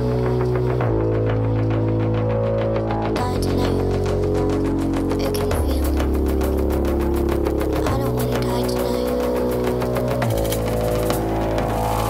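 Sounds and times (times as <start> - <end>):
fast ticking rhythm: 0.0 - 12.0
sustained bass notes: 0.0 - 12.0.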